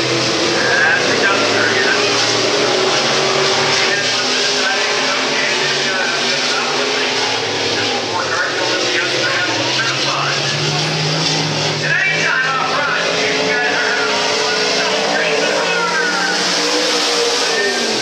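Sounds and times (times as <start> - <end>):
race car engines revving: 0.0 - 18.0.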